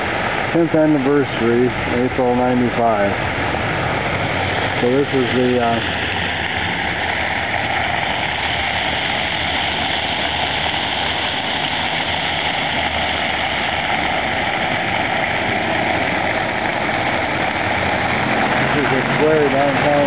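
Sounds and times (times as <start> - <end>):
fountain water splashing on pavement: 0.0 - 20.0.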